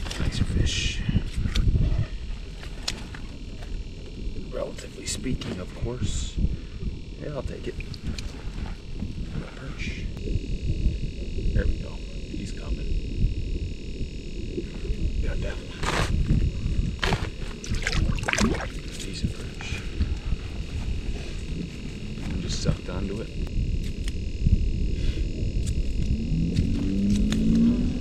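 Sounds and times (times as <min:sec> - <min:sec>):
wind buffeting microphone: 0:00.0 - 0:02.4, 0:05.8 - 0:28.0.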